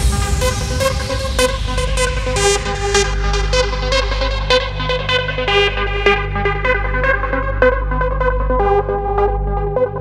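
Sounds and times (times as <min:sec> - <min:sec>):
electronic dance music: 0:00.0 - 0:04.5.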